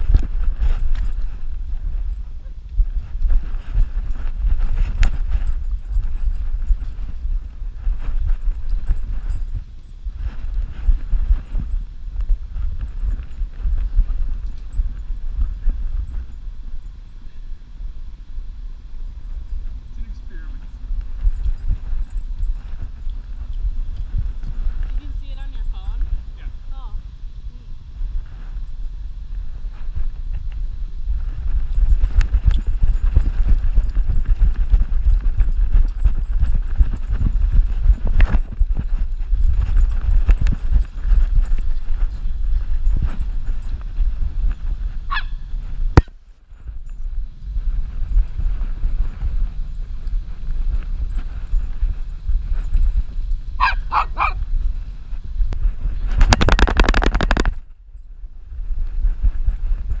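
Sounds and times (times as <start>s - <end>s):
camera rumbling and rubbing: 0.0s - 17.5s, 18.8s - 26.8s, 27.8s - 60.0s.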